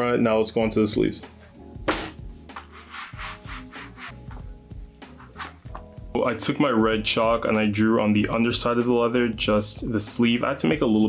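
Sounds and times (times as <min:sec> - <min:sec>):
soft background music: 0:00.0 - 0:11.0
hand rubbing leather and fabric: 0:02.5 - 0:04.4, 0:05.1 - 0:05.8.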